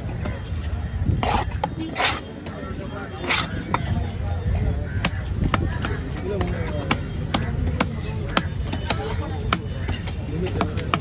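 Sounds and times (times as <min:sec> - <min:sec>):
cleaver chopping on wood block: 0:05.0 - 0:11.0.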